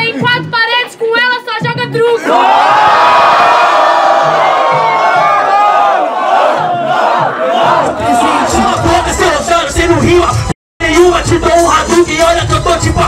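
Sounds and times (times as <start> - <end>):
crowd shouting and cheering: 2.0 - 13.0
hip-hop beat: 6.6 - 13.0.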